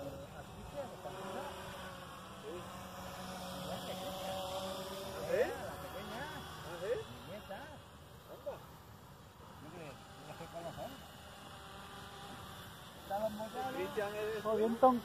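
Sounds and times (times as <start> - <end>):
model plane motor droning: 0.0 - 15.0.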